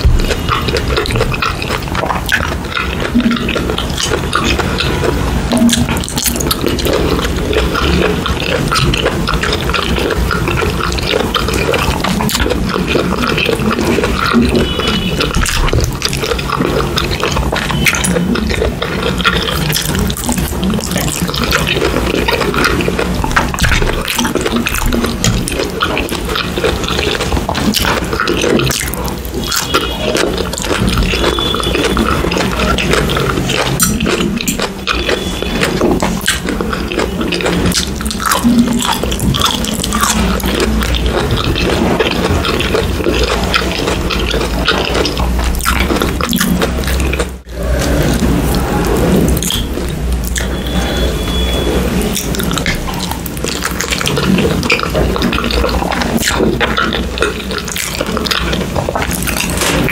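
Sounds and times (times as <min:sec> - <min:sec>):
person chewing: 0:00.0 - 0:59.9.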